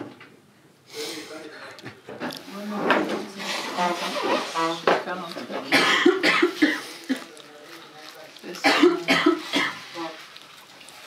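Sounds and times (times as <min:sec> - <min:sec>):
harsh coughs: 0:05.7 - 0:07.4, 0:08.6 - 0:09.9.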